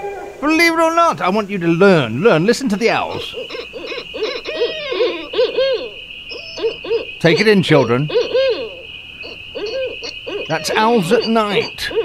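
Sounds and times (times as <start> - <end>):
owls hooting: 0.0 - 12.0.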